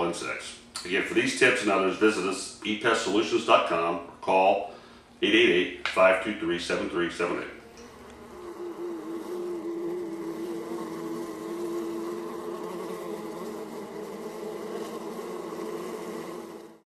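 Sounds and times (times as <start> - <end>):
steady buzzing drone: 6.4 - 16.8.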